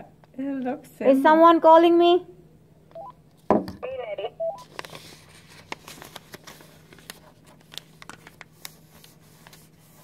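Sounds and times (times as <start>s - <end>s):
radio knocking on wooden table: 3.5s - 3.8s
paper being folded: 4.6s - 10.0s.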